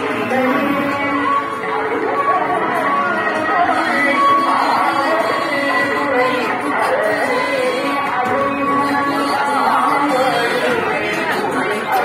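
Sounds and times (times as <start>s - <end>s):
street crowd chatter: 0.0s - 12.0s.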